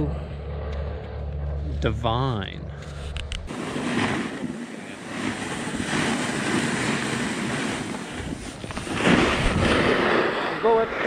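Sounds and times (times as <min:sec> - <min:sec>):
wind on microphone: 0:03.1 - 0:10.9
skis sliding on snow: 0:03.5 - 0:11.0.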